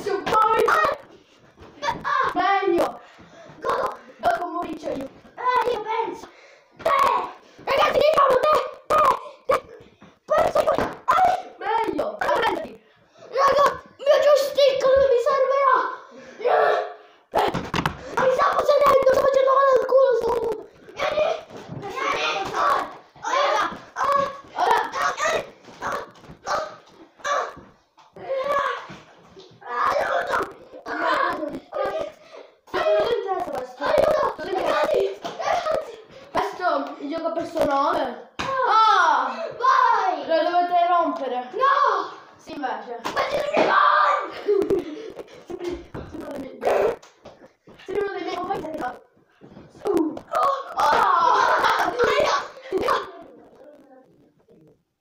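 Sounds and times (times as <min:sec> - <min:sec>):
boys laughing and shouting: 0:00.0 - 0:49.1, 0:49.7 - 0:53.9.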